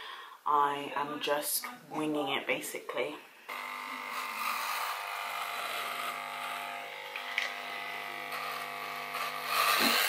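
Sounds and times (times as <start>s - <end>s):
electric hair clippers buzzing: 3.5s - 10.0s.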